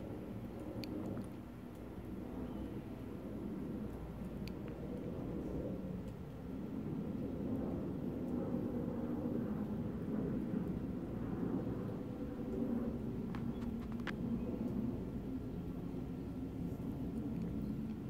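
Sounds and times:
faint clicks: 0.6 - 1.9.

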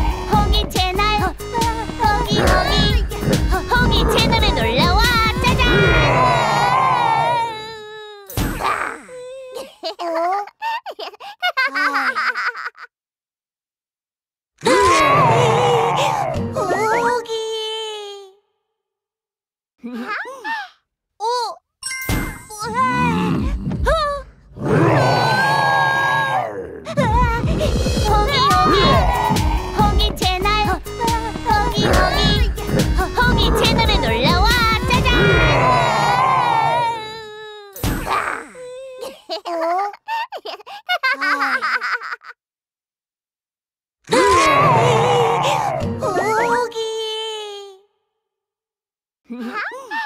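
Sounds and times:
person speaking: 0.2 - 5.7, 28.1 - 35.2
cartoon character vocal sound: 2.1 - 9.3, 26.3 - 38.7
cartoon dinosaur roar: 2.3 - 4.8, 5.5 - 7.8, 14.6 - 16.4, 22.8 - 23.9, 24.5 - 29.8, 34.9 - 37.2, 44.1 - 45.8
cartoon giggles: 9.5 - 12.9, 39.0 - 42.4.

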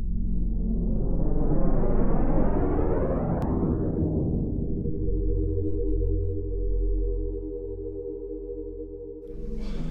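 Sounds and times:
low sustained drone: 4.2 - 9.9.

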